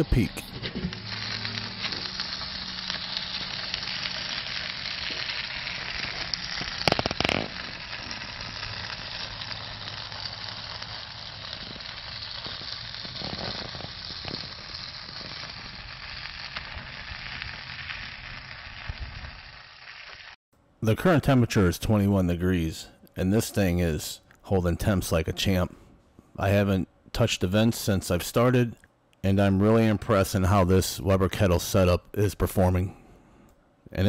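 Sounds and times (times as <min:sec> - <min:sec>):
chicken sizzling on grill: 0:00.0 - 0:20.4.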